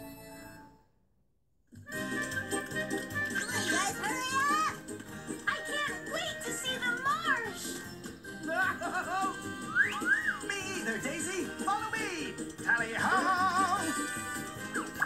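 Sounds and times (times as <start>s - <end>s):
upbeat cartoon music: 1.8s - 15.0s
cartoon voices: 3.2s - 4.8s, 8.5s - 14.1s
sliding whistle-like sounds: 9.7s - 10.5s.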